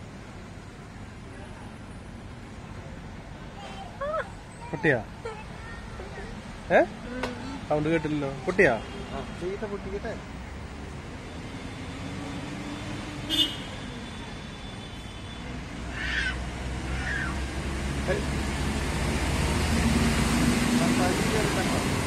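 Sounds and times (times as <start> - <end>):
low rumble of traffic: 0.0 - 22.0.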